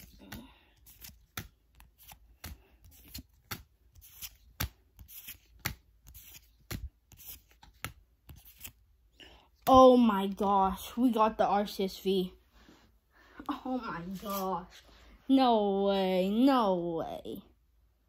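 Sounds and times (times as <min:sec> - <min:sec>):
cards slapping against a stack: 0:00.0 - 0:08.8.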